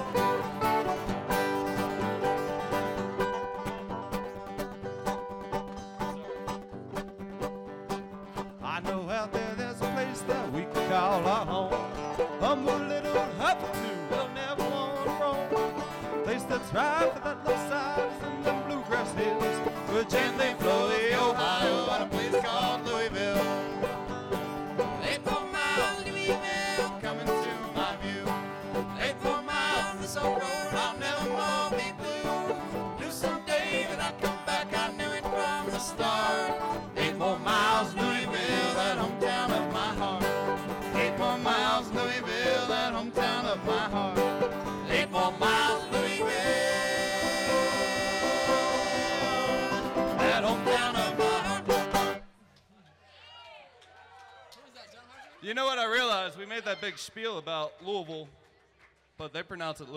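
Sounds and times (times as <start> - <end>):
bluegrass banjo mandolin and guitar: 0.0 - 52.3.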